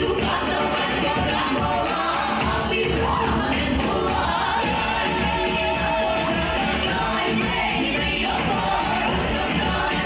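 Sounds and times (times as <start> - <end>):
female group singing in harmony: 0.0 - 10.0.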